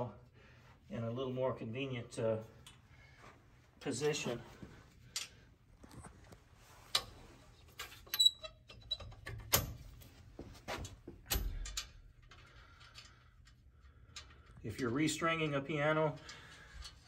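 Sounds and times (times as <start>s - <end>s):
metal frame clicks and clanks: 6.8s - 10.1s, 10.8s - 15.0s.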